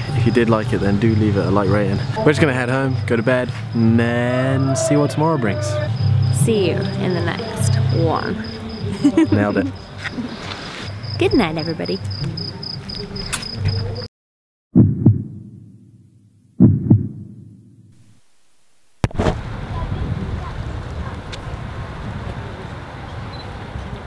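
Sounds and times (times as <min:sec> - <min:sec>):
crickets chirping: 0:00.0 - 0:14.1
deep booming hits: 0:14.8 - 0:15.9, 0:16.6 - 0:17.9.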